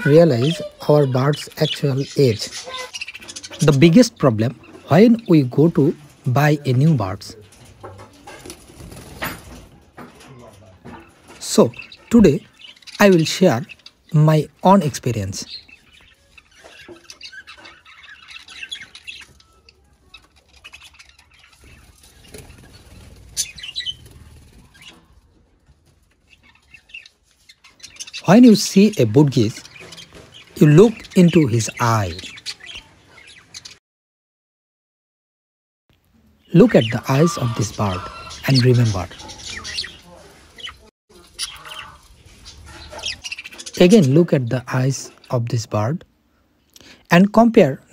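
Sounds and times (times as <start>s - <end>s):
budgerigars chirping: 0.0s - 8.0s, 10.8s - 25.1s, 26.1s - 33.8s, 36.6s - 46.0s.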